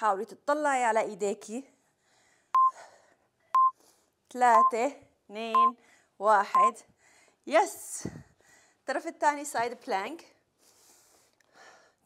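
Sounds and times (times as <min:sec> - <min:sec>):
timer beeping: 0:02.6 - 0:02.8, 0:04.6 - 0:04.8, 0:05.5 - 0:05.8, 0:06.5 - 0:06.8.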